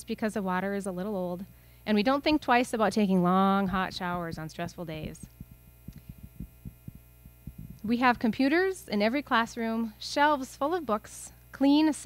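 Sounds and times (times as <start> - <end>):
woman speaking: 0.0 - 5.3, 7.8 - 12.0
electrical mains hum: 0.0 - 12.0
soft low thumps: 3.7 - 8.0.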